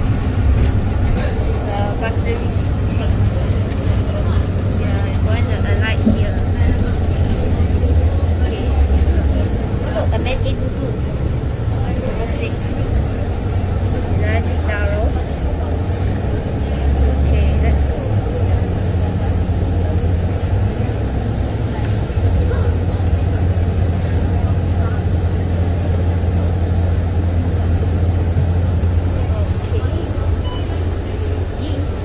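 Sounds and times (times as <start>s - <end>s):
bus engine drone: 0.0s - 32.0s
road and cabin noise: 0.0s - 32.0s.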